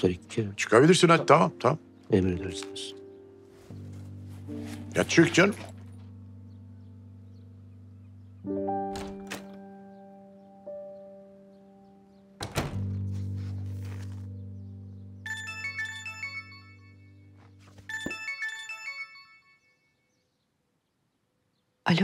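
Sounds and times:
low music drone: 0.0s - 17.4s
phone ringtone: 15.3s - 17.2s, 17.9s - 20.0s.

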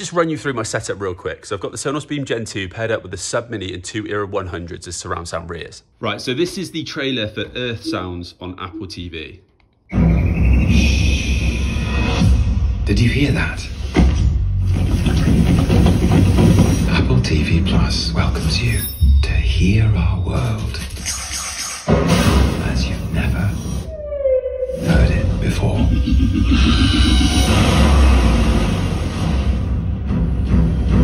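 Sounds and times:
cinematic music: 23.8s - 31.0s
dense rumble with heavy bass: 24.9s - 29.5s.

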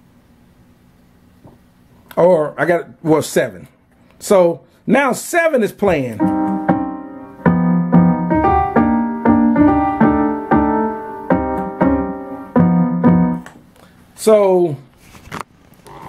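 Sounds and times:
piano-like chords: 6.1s - 13.6s.

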